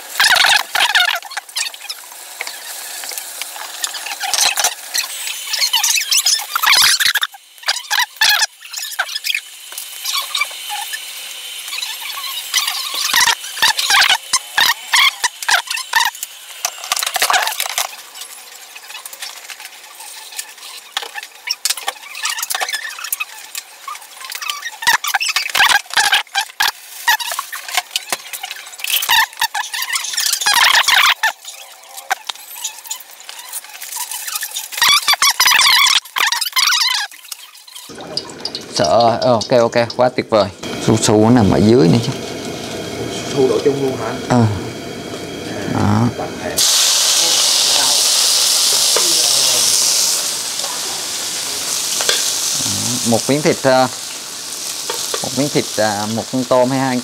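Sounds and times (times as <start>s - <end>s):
vegetables being cut squeaking: 3.9s - 16.2s, 19.9s - 37.9s.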